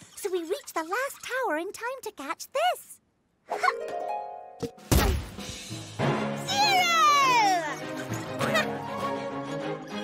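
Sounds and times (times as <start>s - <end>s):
background music: 3.6s - 10.0s
cartoon cannon shot: 4.8s - 5.4s.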